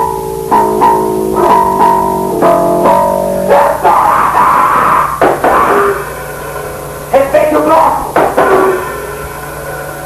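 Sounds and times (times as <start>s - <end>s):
distorted guitar chords: 0.0s - 10.0s
low amplifier hum: 0.0s - 10.0s
rough blast of noise: 0.0s - 10.0s.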